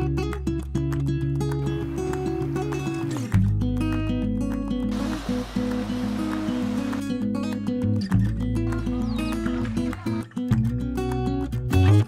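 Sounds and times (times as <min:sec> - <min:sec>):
hiss-like wash: 0:04.9 - 0:07.2.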